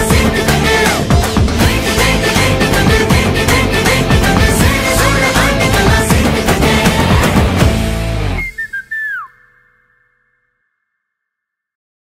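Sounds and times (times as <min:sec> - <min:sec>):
band with heavy beat: 0:00.0 - 0:08.3
high whistle-like notes: 0:08.2 - 0:11.0.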